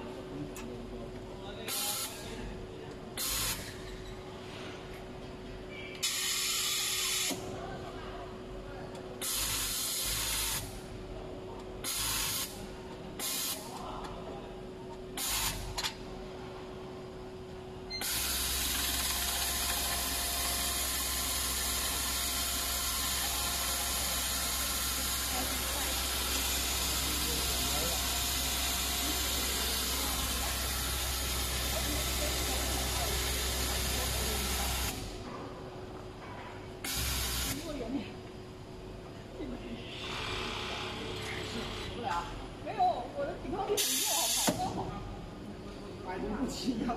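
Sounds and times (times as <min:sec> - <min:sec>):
compressed air hissing: 0:43.8 - 0:44.6.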